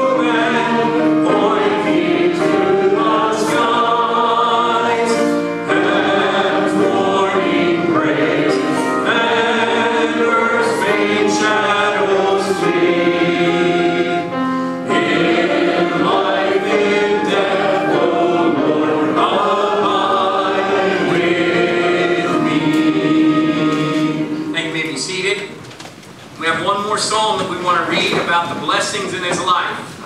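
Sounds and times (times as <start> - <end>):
congregation singing a hymn: 0.0 - 25.4.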